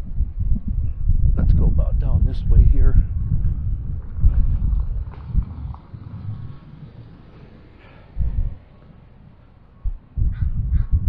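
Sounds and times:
faint outdoor background noise: 0.0 - 11.0
wind buffeting microphone: 0.0 - 11.0.

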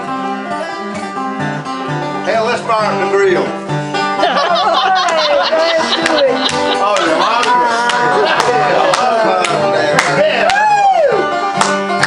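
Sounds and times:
banjo picking: 0.0 - 10.6, 11.2 - 12.0
person singing: 4.8 - 10.4.

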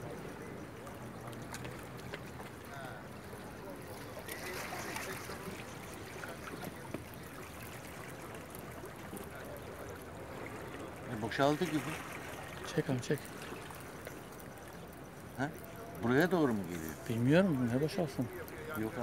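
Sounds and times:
faint distant voices: 0.0 - 19.0
water lapping against rocks: 0.0 - 19.0.

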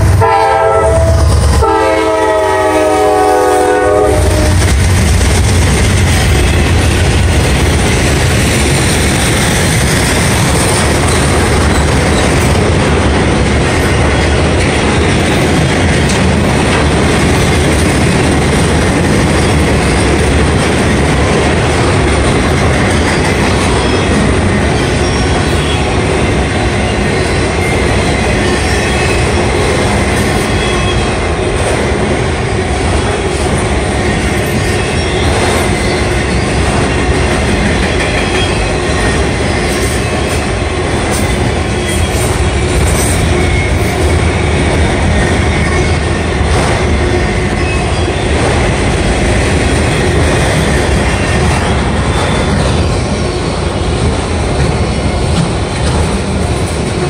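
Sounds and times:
freight train cars rolling past: 0.0 - 57.0.

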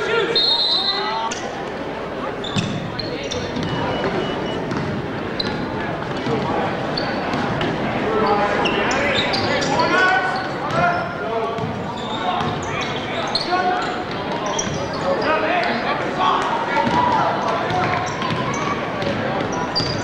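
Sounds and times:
crowd talking and calling out: 0.0 - 20.0
basketball bouncing on hardwood: 4.7 - 5.0.

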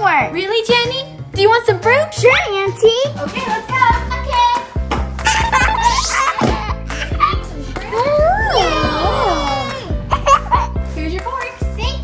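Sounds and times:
background music: 0.0 - 12.0
child's excited wooow: 7.9 - 9.8.

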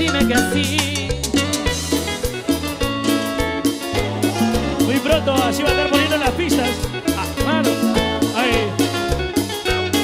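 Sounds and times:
instrumental cumbia band music: 0.0 - 10.0.

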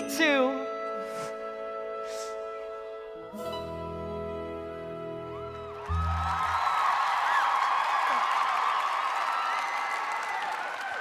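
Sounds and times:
low music chord: 0.0 - 6.4
whoops and whistles: 0.7 - 3.7, 4.3 - 7.5
audience applauding and cheering: 4.7 - 11.0.

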